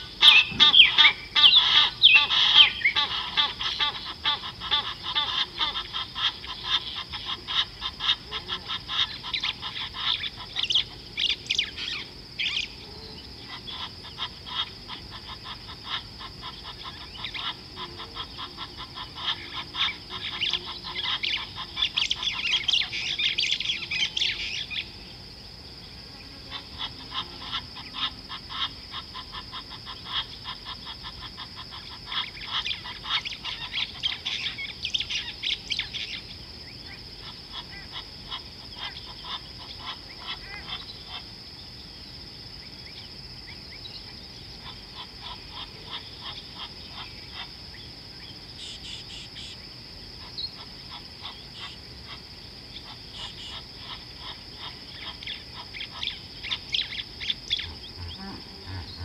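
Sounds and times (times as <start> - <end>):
steady high-pitched hum: 0.0 - 59.0
wild birds chattering: 0.0 - 59.0.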